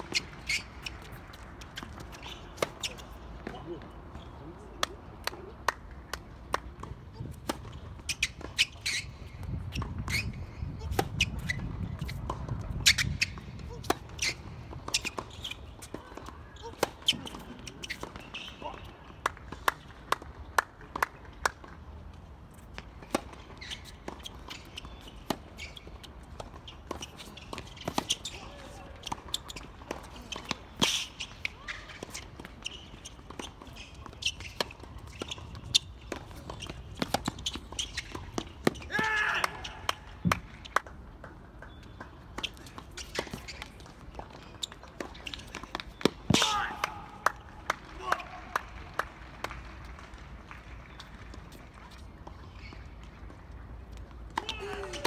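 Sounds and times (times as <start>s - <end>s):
ball bouncing on court: 32.0s - 48.6s.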